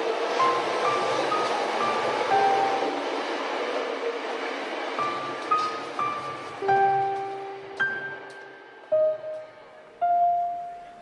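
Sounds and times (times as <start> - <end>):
slow piano notes: 0.4 - 3.0, 5.0 - 11.0.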